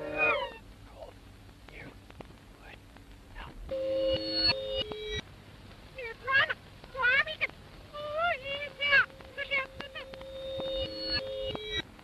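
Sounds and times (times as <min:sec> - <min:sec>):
faint squeaky gliding sounds: 0:00.0 - 0:01.1.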